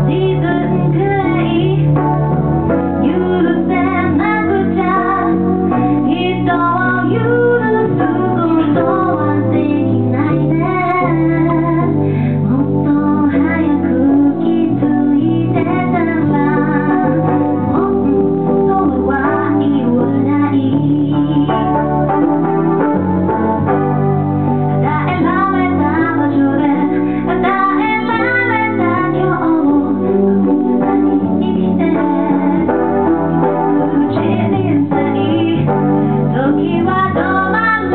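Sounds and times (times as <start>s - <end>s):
woman singing slow song: 0.0s - 2.2s, 2.9s - 21.8s, 24.8s - 37.9s
electric keyboard chords: 0.0s - 37.9s
piano: 0.0s - 37.9s.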